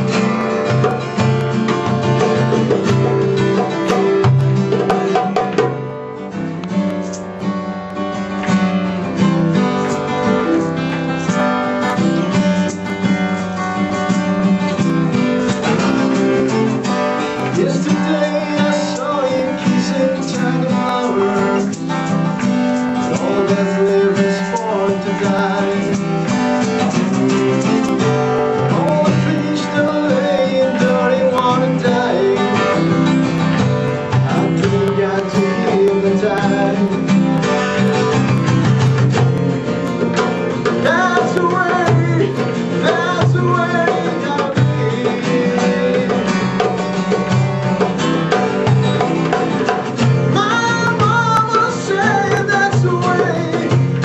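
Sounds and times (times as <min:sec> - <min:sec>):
goblet drum struck by hand: 0:00.0 - 0:07.3, 0:25.3 - 0:54.0
acoustic guitar: 0:00.0 - 0:54.0.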